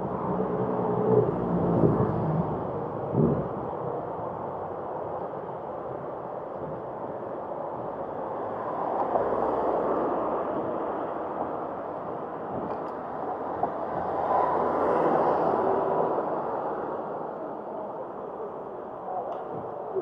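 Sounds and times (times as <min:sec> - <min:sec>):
wind and road noise from bicycle: 0:00.0 - 0:20.0.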